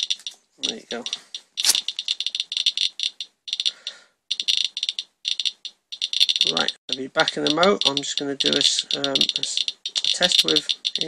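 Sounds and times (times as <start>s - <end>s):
geiger counter clicking rapidly: 0.0s - 11.0s.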